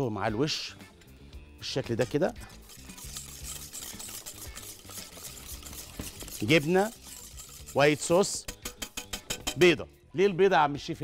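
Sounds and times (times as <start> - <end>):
stirring thick mixture in saucepan: 1.6 - 9.6.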